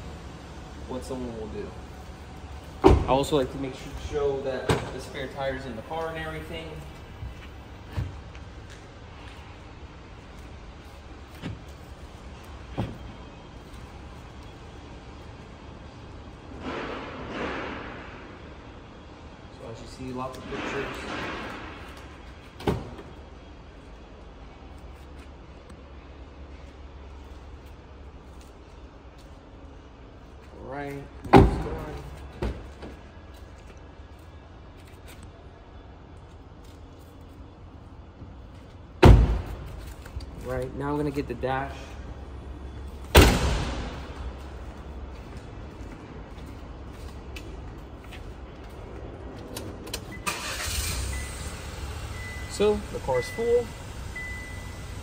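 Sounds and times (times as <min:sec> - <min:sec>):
low hum of parking garage: 0:00.0 - 0:55.0
car door thunk: 0:02.8 - 0:03.1, 0:39.0 - 0:39.7
car liftgate slamming shut: 0:43.1 - 0:43.9
car engine starting: 0:49.4 - 0:55.0.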